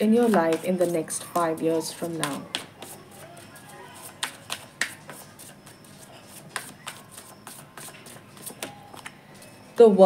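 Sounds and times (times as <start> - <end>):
cards being shuffled by hand: 0.0 - 9.6.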